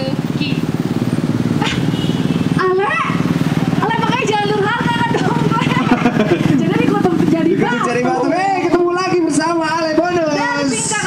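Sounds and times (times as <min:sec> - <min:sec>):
small engine puttering: 0:00.0 - 0:08.4.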